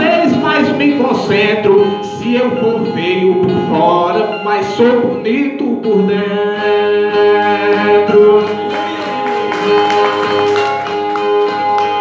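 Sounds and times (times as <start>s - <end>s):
amplified violas plucked: 0.0s - 12.0s.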